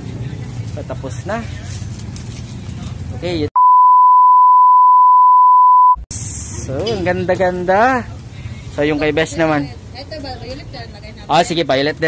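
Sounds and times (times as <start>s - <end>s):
steady pure beep tone: 3.6s - 6.1s.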